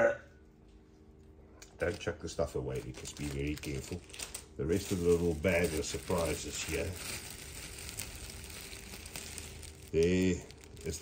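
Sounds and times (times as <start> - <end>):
plastic bag crinkling: 1.6 - 11.0.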